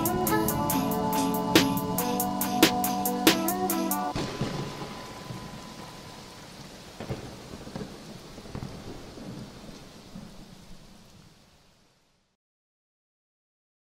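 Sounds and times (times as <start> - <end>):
music: 0.0 - 4.2
thunder rumbling: 0.0 - 11.0
rain: 0.0 - 12.4.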